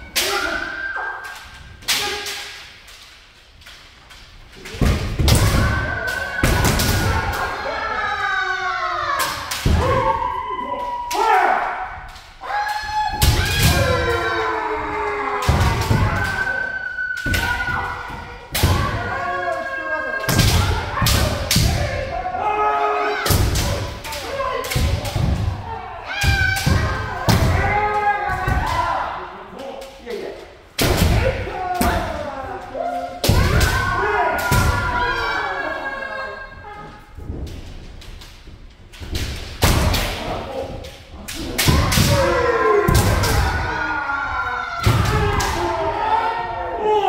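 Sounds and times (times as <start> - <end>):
people shouting drawn-out cries: 5.2 - 29.2, 41.6 - 47.0.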